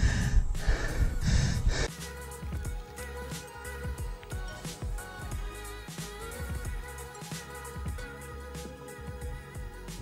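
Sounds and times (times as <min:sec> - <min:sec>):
man panting hard: 0:00.0 - 0:02.0.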